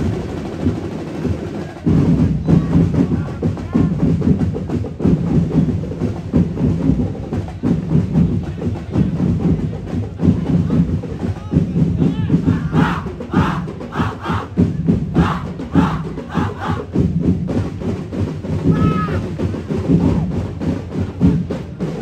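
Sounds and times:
drum and percussion ensemble: 0.0 - 22.0
group of voices shouting: 12.0 - 17.0, 18.7 - 19.3.

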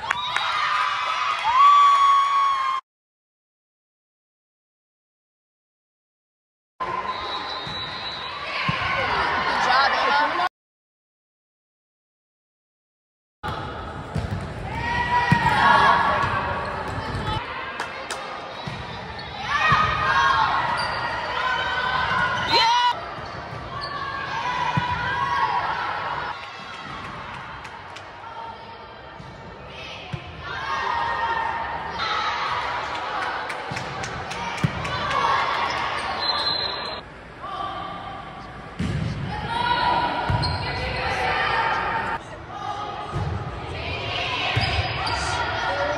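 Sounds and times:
voices in a large gym: 6.8 - 10.5, 13.5 - 45.9
sneakers squeaking on floor: 7.1 - 8.8, 20.6 - 24.2, 35.6 - 37.0, 40.3 - 41.3, 44.5 - 45.4.

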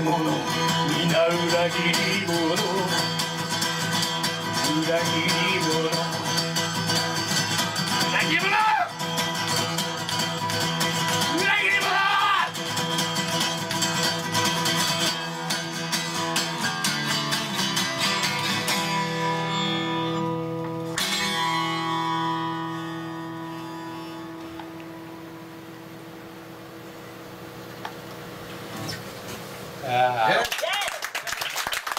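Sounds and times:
guitar strummed hard and fast: 0.0 - 25.6
person shouting: 8.2 - 8.9, 11.3 - 12.6
guitar chord ringing out: 14.2 - 27.2.

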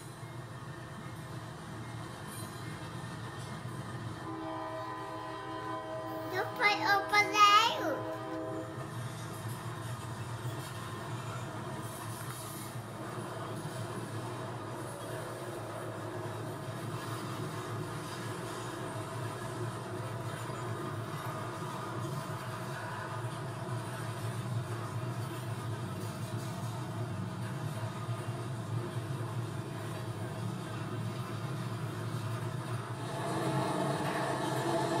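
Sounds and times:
freight train rolling past: 0.0 - 35.0.

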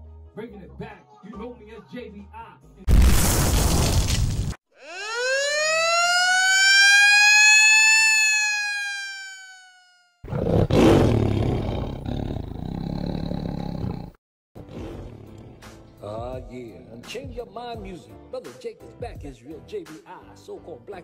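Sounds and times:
siren-like wail: 4.8 - 10.3.

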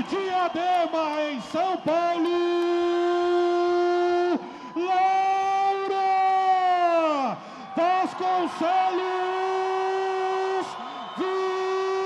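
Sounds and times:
man announcing in long held tones: 0.0 - 12.0.

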